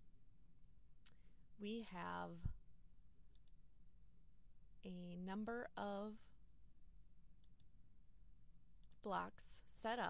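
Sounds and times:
computer mouse clicks: 0:03.3 - 0:03.6, 0:07.4 - 0:07.7, 0:08.8 - 0:09.1.

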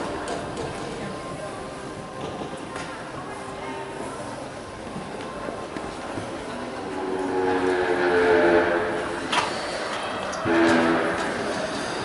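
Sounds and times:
horn blast: 0:07.0 - 0:09.2, 0:10.4 - 0:11.4.

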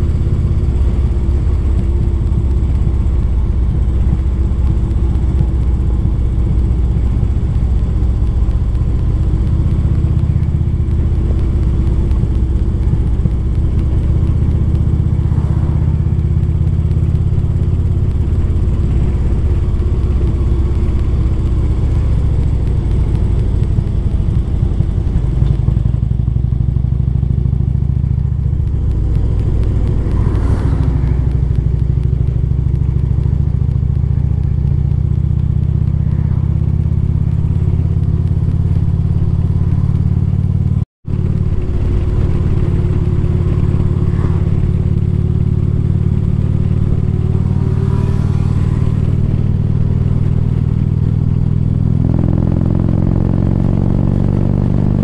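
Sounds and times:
low engine drone: 0:00.0 - 0:55.0.

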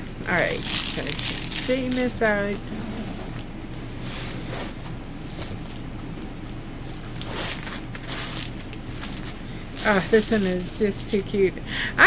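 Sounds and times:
steady low hum: 0:00.0 - 0:12.0
canvas rustling: 0:02.7 - 0:05.7, 0:06.9 - 0:10.7.

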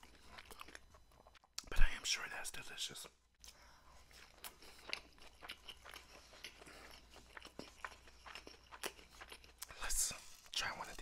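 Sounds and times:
chewing with small crunches: 0:00.0 - 0:01.7, 0:03.4 - 0:11.0.

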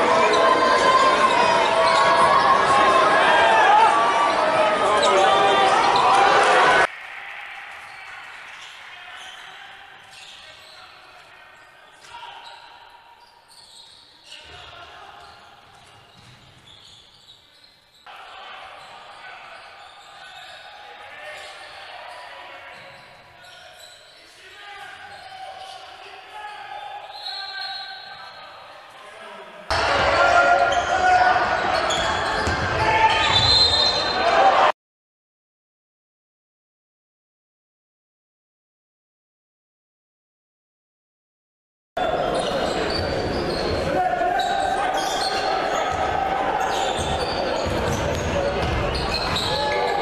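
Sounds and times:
voices echoing in a hall: 0:00.0 - 0:34.7, 0:42.0 - 0:50.0
basketball bouncing: 0:47.0 - 0:49.4.

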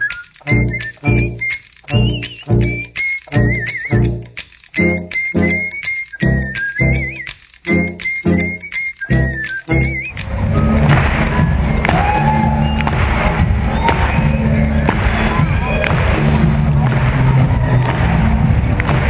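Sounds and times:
whistled tune music: 0:00.0 - 0:19.0
music over loudspeakers: 0:09.7 - 0:19.0
crowd din in gymnasium: 0:10.1 - 0:19.0.

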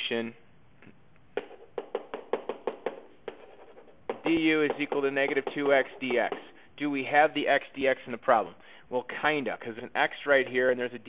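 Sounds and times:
stylus tapping on whiteboard: 0:01.3 - 0:06.6.

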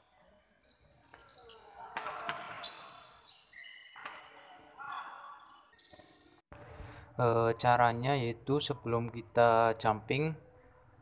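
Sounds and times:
shoes squeaking on court floor: 0:00.1 - 0:06.4.

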